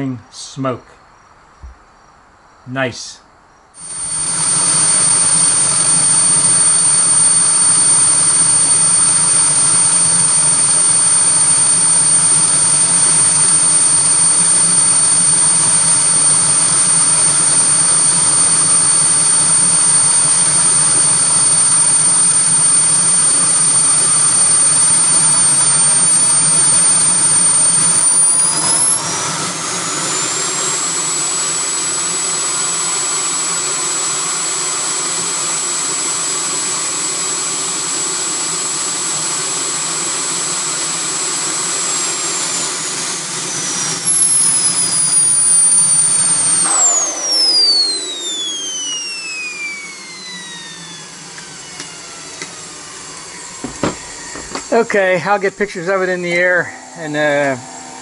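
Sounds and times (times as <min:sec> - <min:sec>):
model jet turbine whine: 0:03.8 - 0:58.0.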